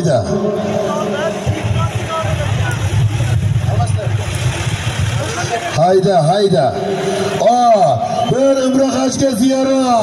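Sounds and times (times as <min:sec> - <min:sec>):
crowd voices: 0:00.0 - 0:10.0
tractor engine rumble: 0:00.7 - 0:05.8.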